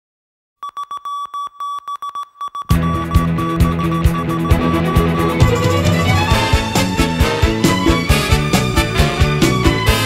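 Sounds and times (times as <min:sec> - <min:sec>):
morse code beeps: 0:00.6 - 0:06.0.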